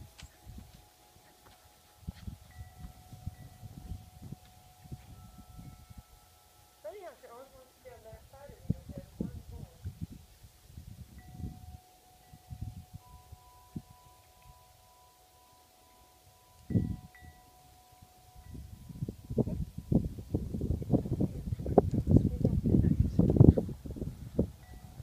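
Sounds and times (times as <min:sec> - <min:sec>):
wind thumps on microphone: 0:02.0 - 0:06.1, 0:08.1 - 0:14.0, 0:18.4 - 0:25.0
long ringing tones: 0:11.2 - 0:20.2.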